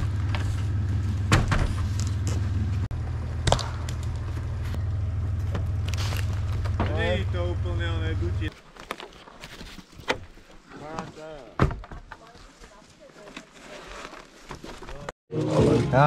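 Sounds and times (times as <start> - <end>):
engine idling: 0.0 - 8.5.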